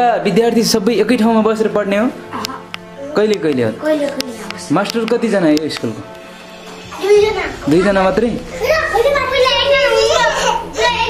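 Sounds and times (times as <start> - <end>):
young children talking and calling out: 8.4 - 11.0.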